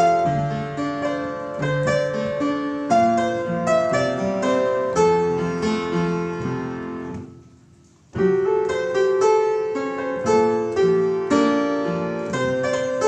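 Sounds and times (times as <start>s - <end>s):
upright piano melody: 0.0s - 13.0s.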